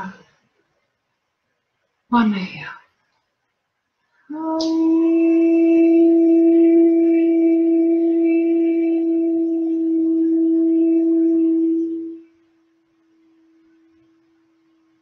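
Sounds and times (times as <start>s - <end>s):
faint tone: 4.3s - 15.0s
woman singing a steady note: 4.3s - 15.0s.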